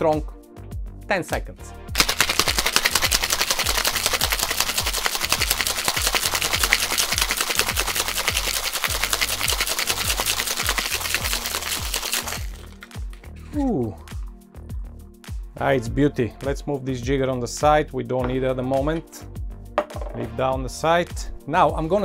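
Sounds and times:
background music: 0:00.0 - 0:22.0
ice rattling in metal shaker: 0:02.0 - 0:13.2.

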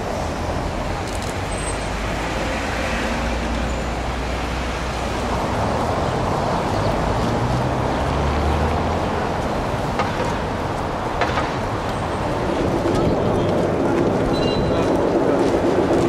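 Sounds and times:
passing cars rumbling: 0:00.0 - 0:16.0.

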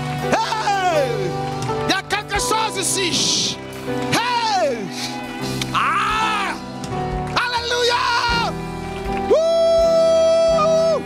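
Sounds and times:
background music chords: 0:00.0 - 0:11.0.

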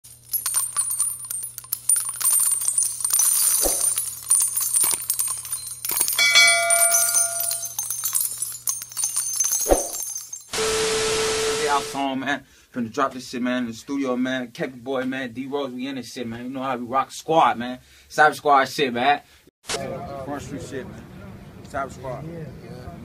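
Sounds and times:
high glittering shimmer: 0:00.1 - 0:10.6
static hiss with steady tone: 0:10.5 - 0:12.7.

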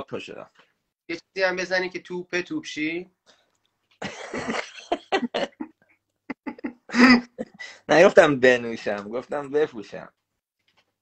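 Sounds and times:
person coughing: 0:06.9 - 0:07.6.

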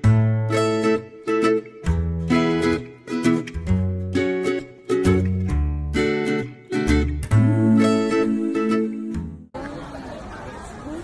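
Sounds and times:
acoustic guitar music: 0:00.0 - 0:09.5
street noise: 0:06.8 - 0:11.0.

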